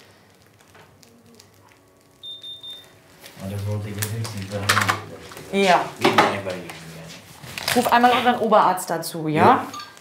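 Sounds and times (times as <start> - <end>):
thermometer high beeps: 2.2 - 2.9.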